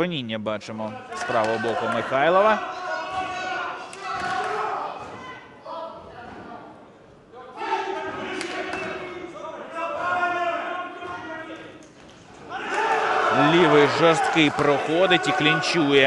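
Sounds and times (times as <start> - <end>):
men shouting in echoing hall: 1.0 - 6.0, 7.4 - 11.7, 12.4 - 16.0.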